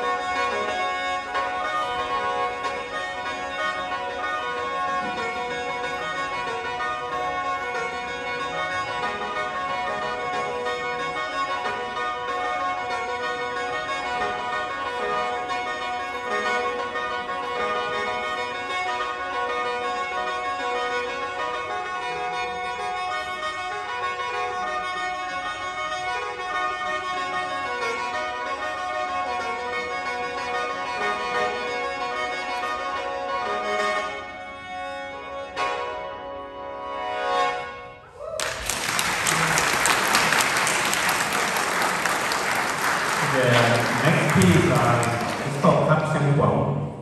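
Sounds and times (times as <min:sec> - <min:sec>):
bamboo mouth organ playing: 0:00.0 - 0:47.0.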